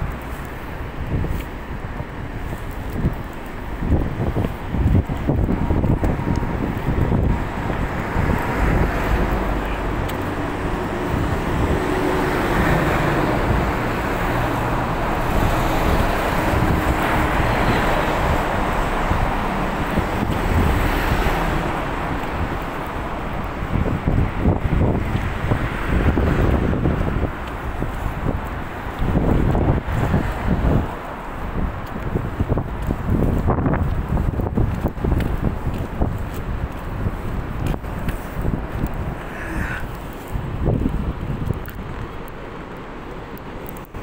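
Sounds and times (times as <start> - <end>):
road traffic: 0.0 - 44.0
wind rumbling on microphone: 0.0 - 44.0
truck passing: 3.6 - 41.3.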